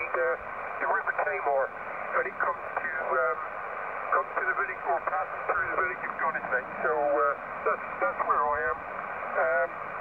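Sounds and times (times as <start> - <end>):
radio speech from speaker: 0.0 - 9.8
steady radio hiss: 0.0 - 10.0.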